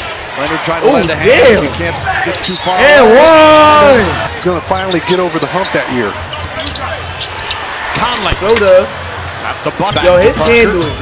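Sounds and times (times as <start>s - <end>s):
sneakers squeaking: 0.0s - 2.8s, 4.0s - 8.9s.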